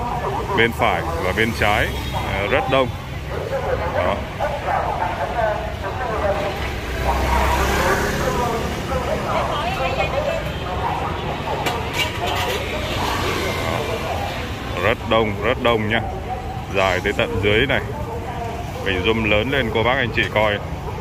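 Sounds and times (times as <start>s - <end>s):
motor traffic rumble: 0.0s - 21.0s
people talking: 0.0s - 21.0s.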